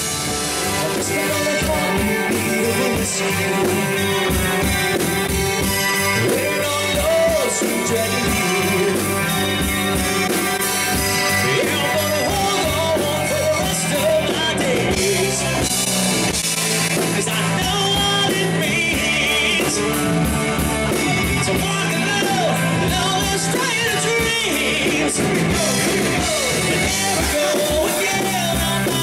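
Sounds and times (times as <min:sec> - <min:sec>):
drum kit: 0:00.0 - 0:29.0
electric bass: 0:00.0 - 0:29.0
electric guitar: 0:00.0 - 0:29.0
lead vocal singing: 0:00.0 - 0:29.0.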